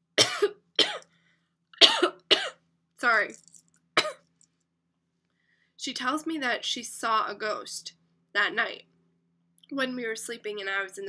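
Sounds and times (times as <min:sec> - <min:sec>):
woman coughing: 0:00.2 - 0:01.1, 0:01.8 - 0:02.6, 0:04.0 - 0:04.2.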